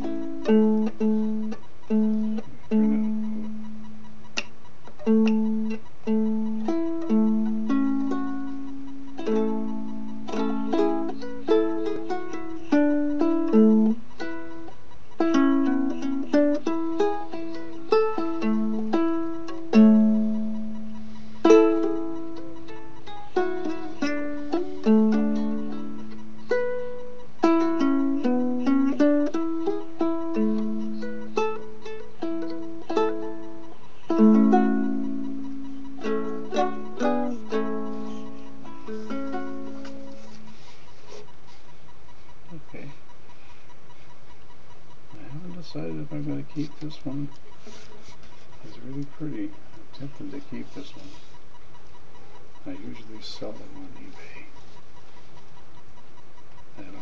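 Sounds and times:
ukulele strummed and picked: 0.0s - 3.7s, 4.4s - 40.6s.

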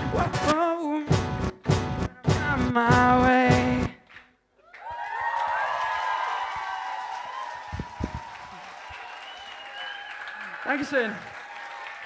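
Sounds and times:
audience applause: 4.6s - 12.0s
cheers and whoops: 4.6s - 12.0s.

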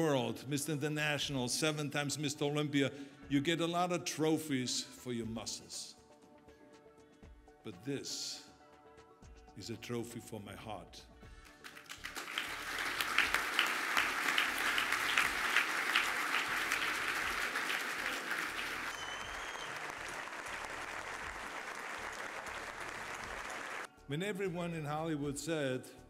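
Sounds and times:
audience applauding: 11.5s - 23.9s.

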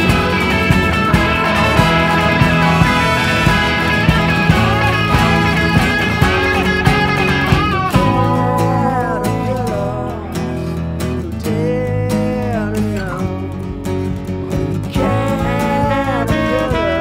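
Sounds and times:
bending lead melody: 0.0s - 17.0s
folk rock band playing: 0.0s - 17.0s.

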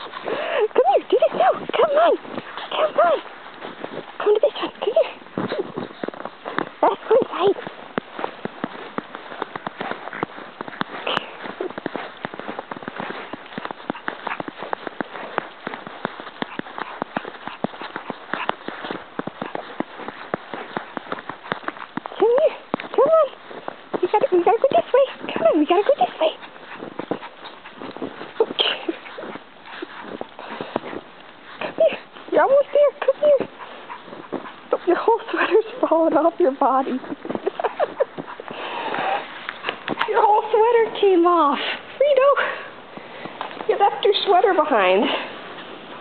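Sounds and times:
footsteps crunching through snow: 0.0s - 46.0s.

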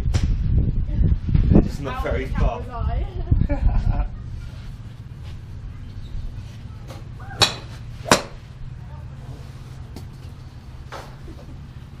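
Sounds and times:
steady low rumble: 0.0s - 12.0s
golf clubs striking balls: 6.6s - 8.6s.

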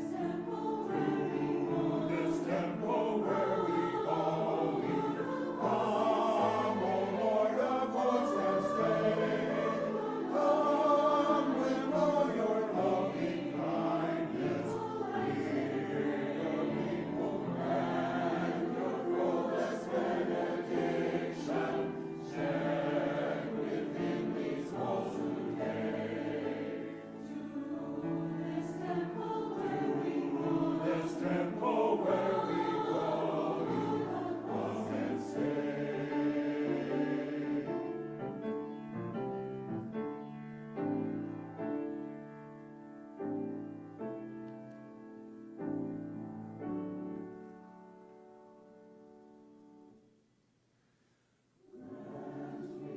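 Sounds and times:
mixed choir singing: 0.0s - 38.5s, 51.6s - 52.9s.

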